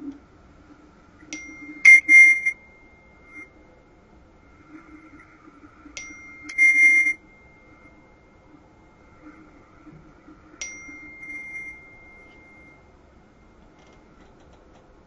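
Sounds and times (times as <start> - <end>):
high bell-like ringing tone: 1.3 - 14.2.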